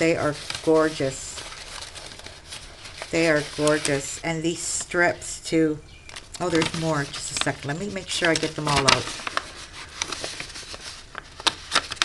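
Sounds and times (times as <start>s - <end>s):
paper rustling: 0.0s - 5.2s, 6.0s - 12.0s.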